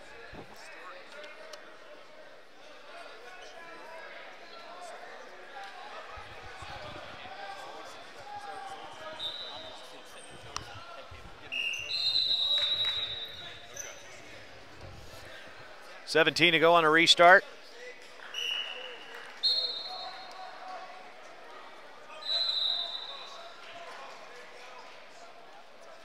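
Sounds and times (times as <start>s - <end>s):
referee's whistle: 8.9s - 10.0s, 11.5s - 14.0s, 18.2s - 20.4s, 22.1s - 23.4s.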